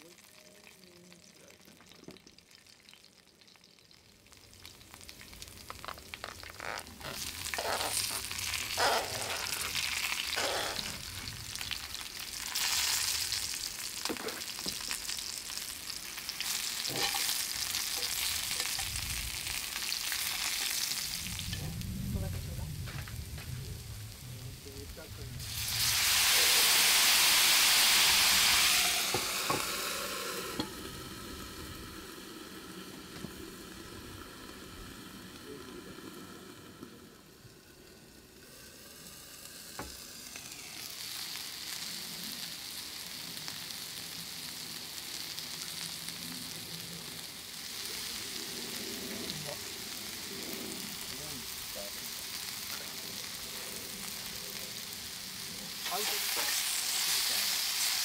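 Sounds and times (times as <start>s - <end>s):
food frying in oil: 0.0s - 58.0s
loud hissing of liquid in hot pan: 4.3s - 58.0s.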